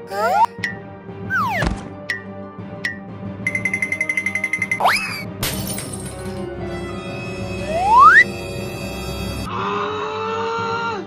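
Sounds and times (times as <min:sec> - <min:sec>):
background music: 0:00.0 - 0:11.0
glass fishbowl shattering: 0:05.4 - 0:06.5.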